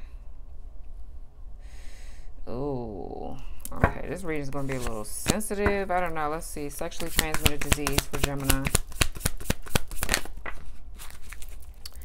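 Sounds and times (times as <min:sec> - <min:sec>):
cards being shuffled: 0:04.6 - 0:05.5, 0:06.9 - 0:11.8.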